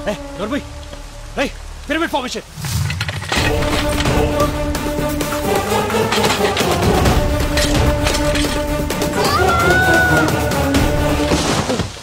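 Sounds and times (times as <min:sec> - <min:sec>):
rising and falling shouted calls: 0:09.1 - 0:10.8.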